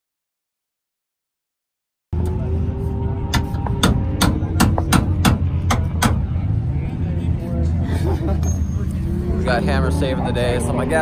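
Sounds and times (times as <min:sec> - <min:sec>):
hammer striking metal: 0:03.3 - 0:06.3.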